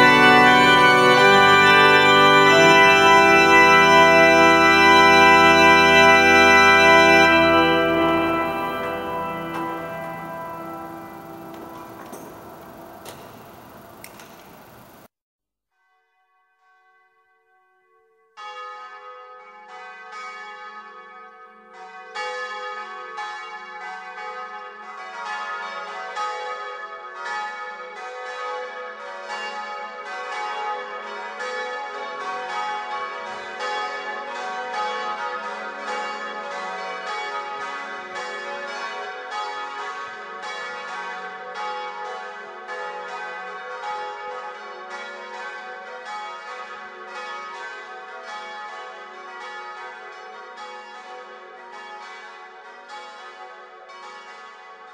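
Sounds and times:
bells ringing in a peal: 0.0s - 15.0s, 18.4s - 54.9s.

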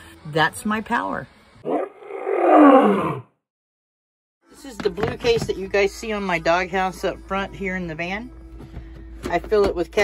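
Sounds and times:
big cat roar: 1.6s - 3.3s.

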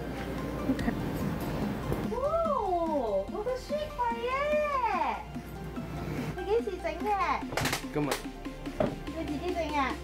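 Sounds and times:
quiet background music: 0.0s - 10.0s
woman saying woah: 2.1s - 3.2s.

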